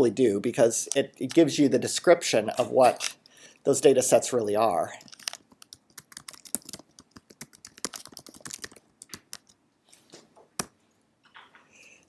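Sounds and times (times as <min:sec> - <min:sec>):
computer keyboard typing: 0:05.0 - 0:09.6.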